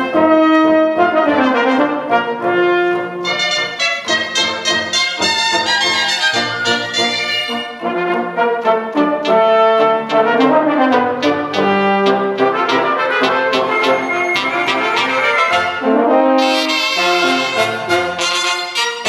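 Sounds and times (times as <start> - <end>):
trumpet melody: 0.0 - 19.0
wind band playing live: 0.0 - 19.0.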